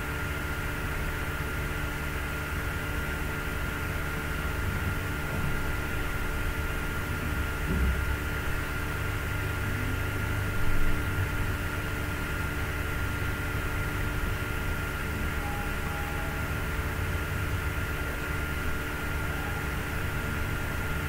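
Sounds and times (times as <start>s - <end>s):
thin high-pitched tone: 15.4s - 16.7s.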